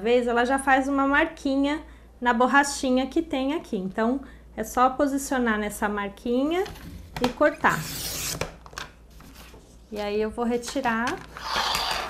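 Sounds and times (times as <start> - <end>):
paper trimmer slicing paper: 7.6 - 8.5, 11.3 - 12.0.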